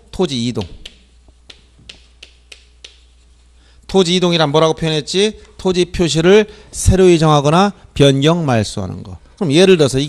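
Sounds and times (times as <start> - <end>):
low steady hum: 0.0 - 10.0
chalk tapping on blackboard: 0.6 - 3.5.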